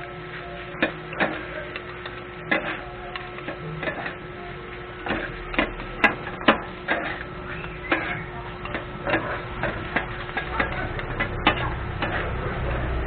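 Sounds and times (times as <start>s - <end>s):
metal spatulas scraping griddle: 0.8s - 4.3s, 5.0s - 13.0s.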